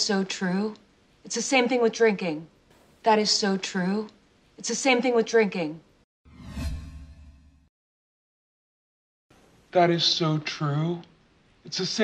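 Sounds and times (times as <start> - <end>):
low rumble: 6.3 - 7.7
whoosh sound effect: 6.3 - 7.7.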